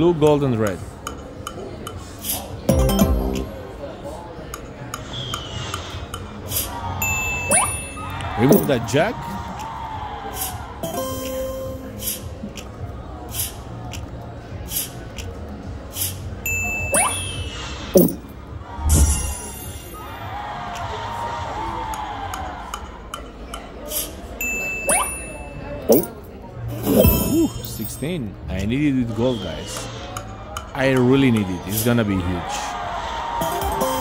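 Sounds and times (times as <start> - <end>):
high dings: 2.7 - 3.6, 7.0 - 8.8, 16.5 - 18.3, 24.4 - 26.3.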